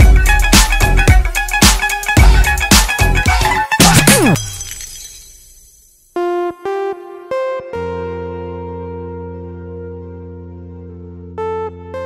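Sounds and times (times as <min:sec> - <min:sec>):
dance music: 0:00.0 - 0:04.4.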